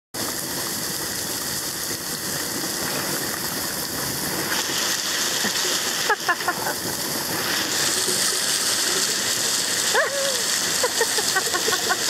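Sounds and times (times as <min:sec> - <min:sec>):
small waterfall splashing: 0:00.2 - 0:12.0.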